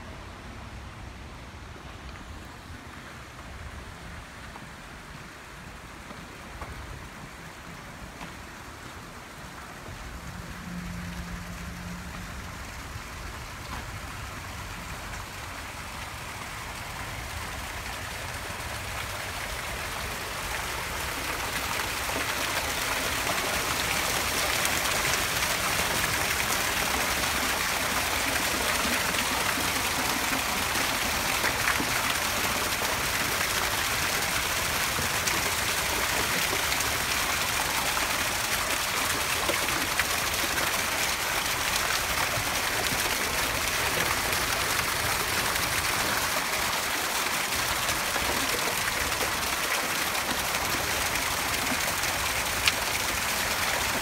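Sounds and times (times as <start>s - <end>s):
fountain water splashing: 0.0s - 54.0s.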